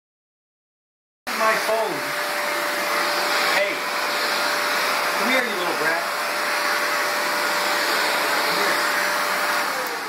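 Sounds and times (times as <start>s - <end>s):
vacuum cleaner running: 1.3s - 10.0s.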